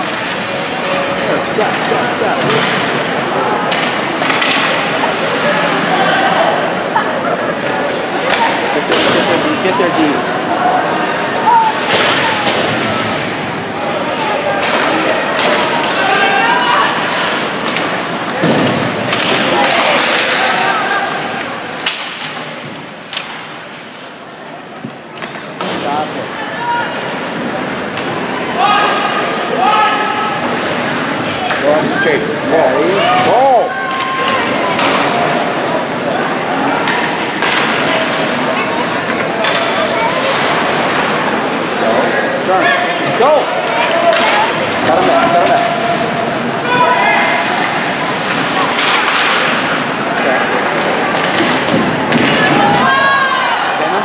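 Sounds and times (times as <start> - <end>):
spectators chattering and shouting: 0.0 - 54.0.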